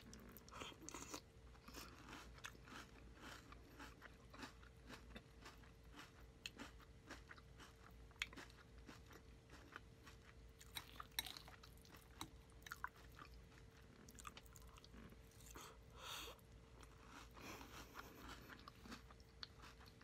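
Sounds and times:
chewing crunchy cereal: 0.0s - 20.0s.

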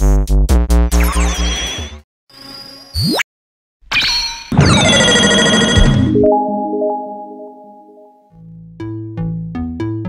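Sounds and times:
soft ringtone-like synth tones: 4.8s - 8.2s
synth chord sweeping down: 6.1s - 8.3s.

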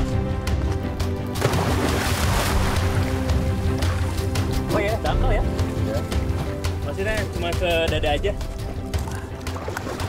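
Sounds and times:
background music: 0.0s - 10.0s
splash of person diving: 1.4s - 3.1s.

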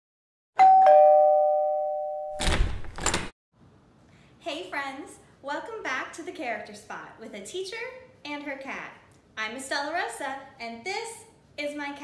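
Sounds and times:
two-note ding-dong chime: 0.6s - 2.4s.

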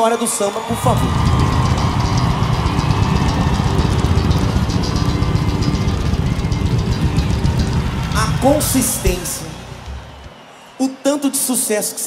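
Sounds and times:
music from stage: 0.0s - 12.0s
stadium crowd cheering and applauding: 0.0s - 12.0s.

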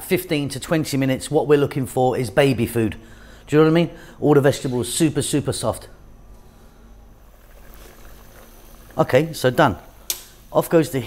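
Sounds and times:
soup boiling: 7.0s - 11.0s.

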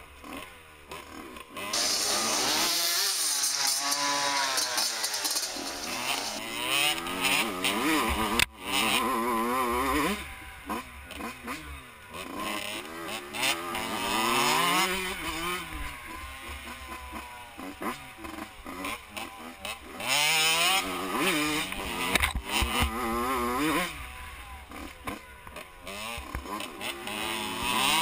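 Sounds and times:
dirt bike engines revving: 0.1s - 28.0s.

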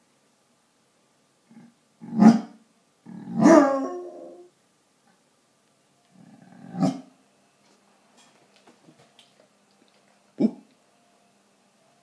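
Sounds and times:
dog howling: 3.3s - 4.5s.

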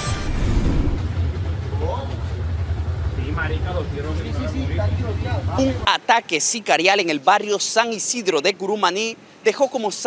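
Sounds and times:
low hum: 0.0s - 5.8s
people's voices: 1.1s - 10.0s.

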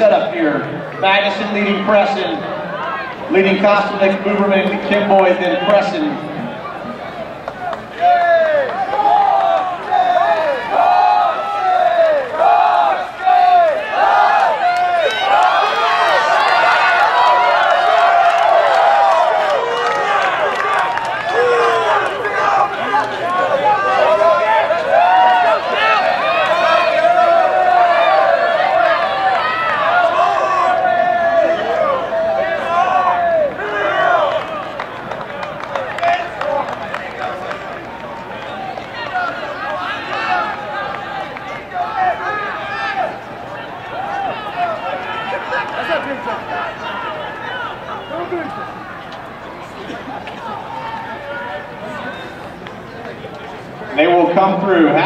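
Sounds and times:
spectators shouting and cheering: 0.0s - 55.0s.

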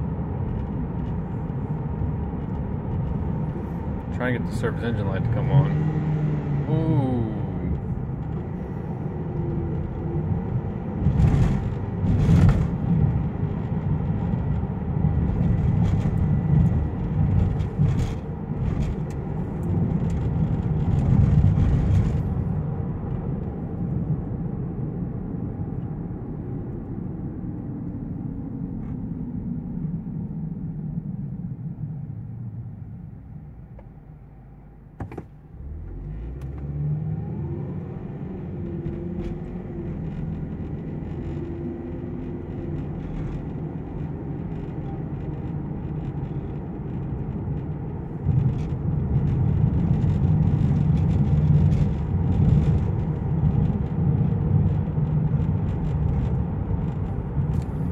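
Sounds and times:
car engine and road rumble: 0.0s - 57.9s.

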